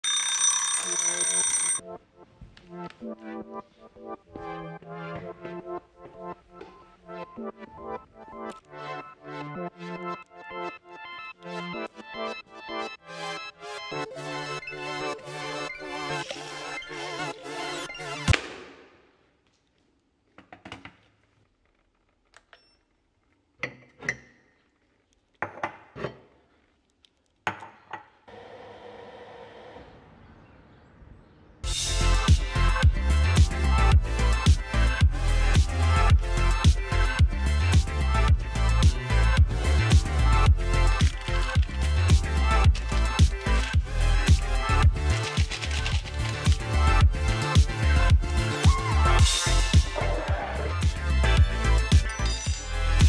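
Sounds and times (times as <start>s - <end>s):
loud high-pitched ringing: 0.0s - 1.8s.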